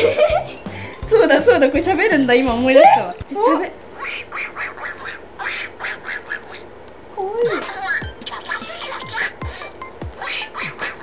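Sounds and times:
toy duck quacking laugh: 0:04.0 - 0:06.7, 0:07.6 - 0:11.0.

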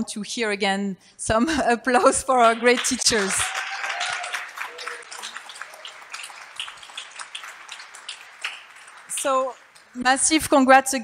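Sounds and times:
audience applauding: 0:02.4 - 0:10.0.

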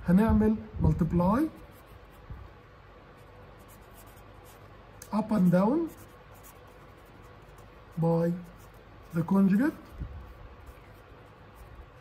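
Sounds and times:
marker scratching on paper: 0:01.4 - 0:02.3, 0:03.1 - 0:12.0.

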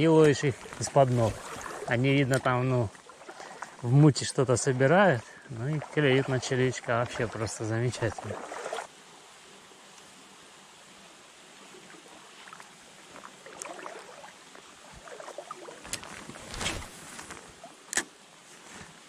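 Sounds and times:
shallow river flowing: 0:00.0 - 0:19.0.

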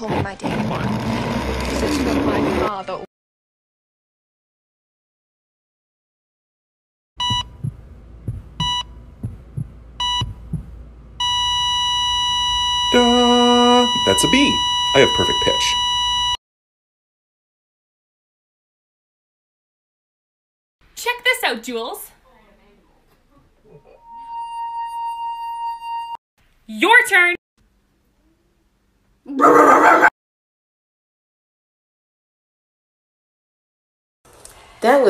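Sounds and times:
soft low heartbeat thumps: 0:07.2 - 0:11.0
heart monitor beeping: 0:07.2 - 0:16.4
flatline tone: 0:11.2 - 0:16.4.

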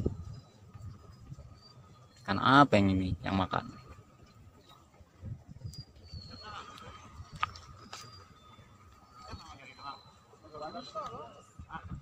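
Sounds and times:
faint steady high tone: 0:00.0 - 0:12.0.

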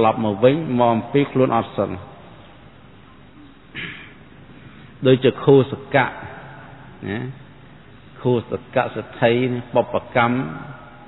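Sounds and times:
man preaching: 0:00.0 - 0:02.2, 0:08.2 - 0:10.8
low background hiss: 0:00.0 - 0:11.0.

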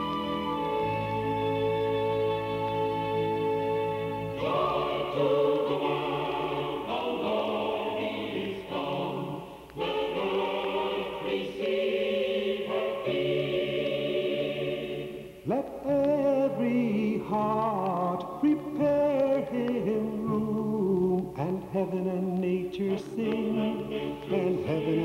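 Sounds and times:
choir singing: 0:00.0 - 0:15.5, 0:22.5 - 0:25.0
singers breathing: 0:09.4 - 0:09.8.

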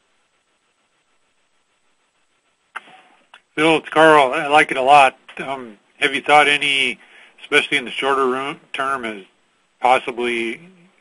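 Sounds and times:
faint phone line hiss: 0:00.0 - 0:11.0.

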